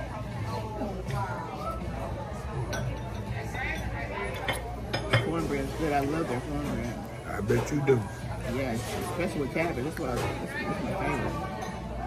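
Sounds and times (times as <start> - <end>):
background talk: 0.0 - 12.0
cutlery clinking against dishes: 2.6 - 8.0, 8.7 - 12.0.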